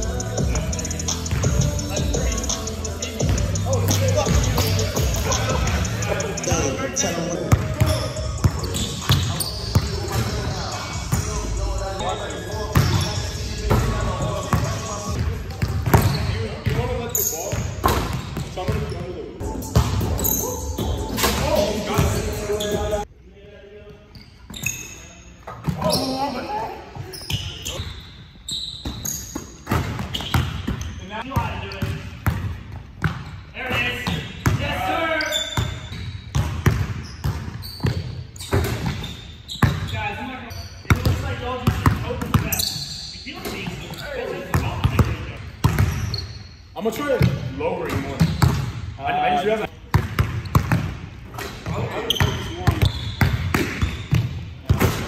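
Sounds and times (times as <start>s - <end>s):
people's voices: 0.0s - 17.3s
basketballs bouncing on hardwood: 36.3s - 39.9s, 40.9s - 42.6s, 44.5s - 46.1s, 49.9s - 51.0s, 51.7s - 55.0s.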